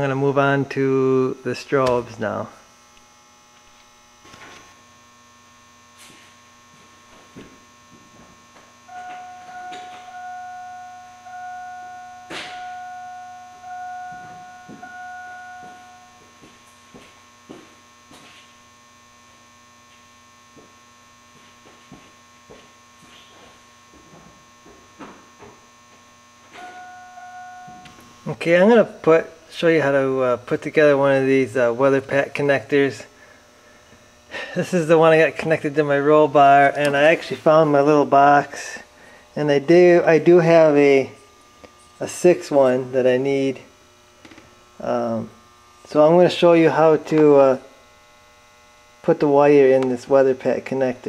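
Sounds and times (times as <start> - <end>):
electrical mains hum: 0.0 - 51.0
buzzer-like tone: 7.0 - 16.8, 26.2 - 28.7.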